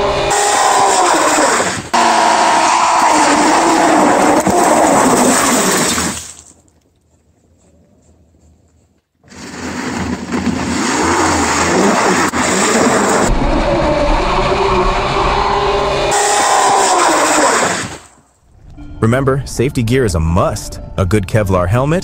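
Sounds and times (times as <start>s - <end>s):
tyre screeching on asphalt: 9.2s - 13.3s.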